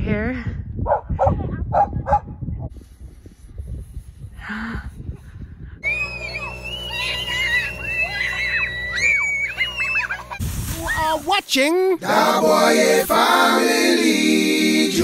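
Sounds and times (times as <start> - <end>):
children shrieking and squealing: 5.8 - 11.0.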